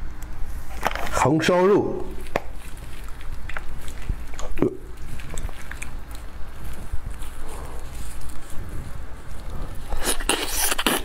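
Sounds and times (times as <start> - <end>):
plastic glove crinkle: 0.4 - 11.0
wet handling of meat: 2.0 - 11.0.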